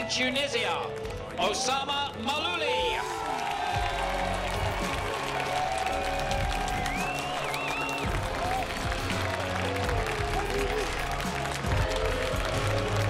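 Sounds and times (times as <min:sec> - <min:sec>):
crowd applauding and cheering: 0:00.0 - 0:13.0
music: 0:00.0 - 0:13.0.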